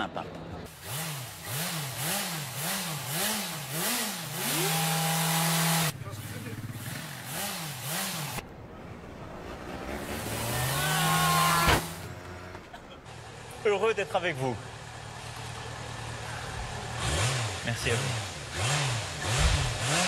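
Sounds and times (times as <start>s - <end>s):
quad bike engine revving: 0.7s - 8.4s, 9.2s - 20.0s.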